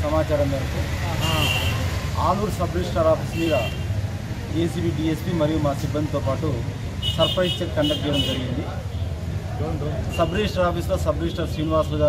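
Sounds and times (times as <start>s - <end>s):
man speaking: 0.0s - 3.8s, 4.5s - 8.8s.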